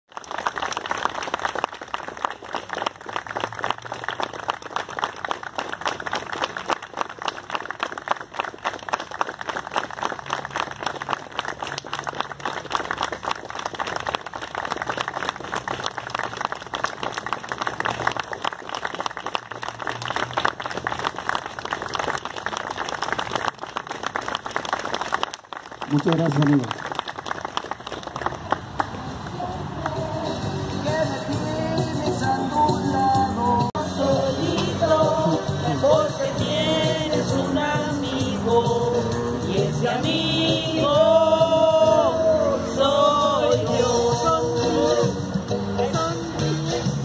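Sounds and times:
people clapping: 0:00.1 - 0:30.4.

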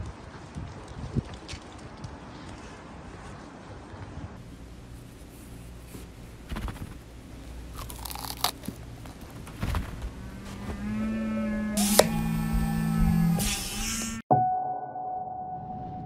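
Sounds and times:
held pitched tone bending upward: 0:10.6 - 0:16.0.

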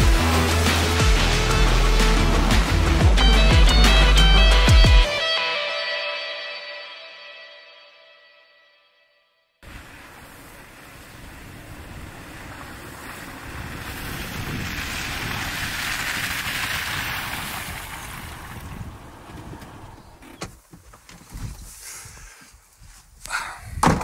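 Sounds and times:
car driving over grass: 0:09.6 - 0:21.9
car door opening clicks: 0:19.3 - 0:21.2.

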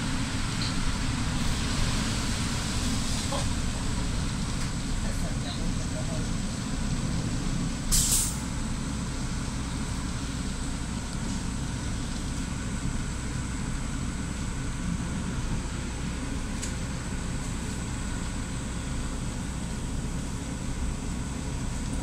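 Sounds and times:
bus engine drone: 0:00.0 - 0:22.0
compressed air hiss: 0:07.9 - 0:08.4.

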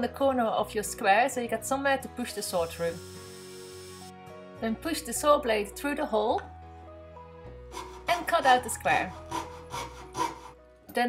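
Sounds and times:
fret saw cutting plywood: 0:09.1 - 0:10.6.

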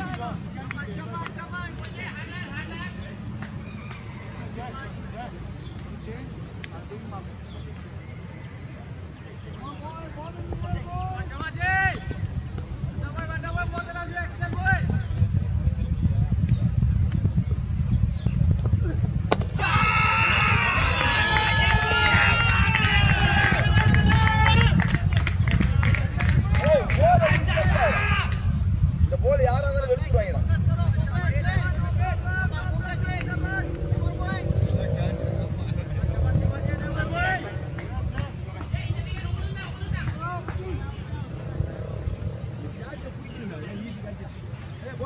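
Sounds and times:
faint distant voices calling: 0:00.0 - 0:29.0, 0:29.8 - 0:45.0
wind buffeting microphone: 0:07.4 - 0:45.0
people shouting calls: 0:19.6 - 0:24.8, 0:26.4 - 0:28.5.

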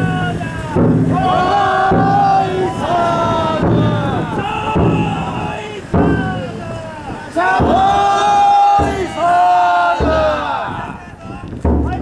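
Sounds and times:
deep drum beat: 0:00.0 - 0:12.0
people chanting together: 0:01.1 - 0:11.2.

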